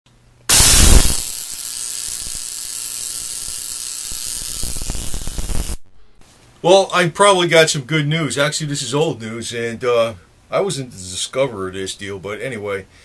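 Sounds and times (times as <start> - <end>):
electrical buzz-hiss: 0.5 - 6.2.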